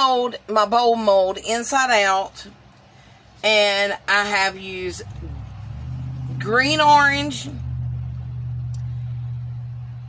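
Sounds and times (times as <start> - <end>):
low machine hum: 0.8 - 10.0
faint tick: 8.7 - 8.9.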